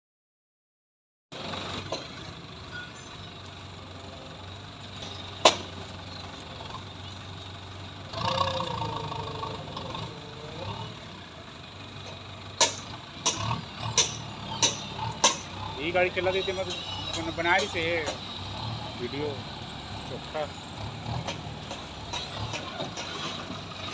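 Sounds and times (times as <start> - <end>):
diesel engine idling: 1.4 - 23.9.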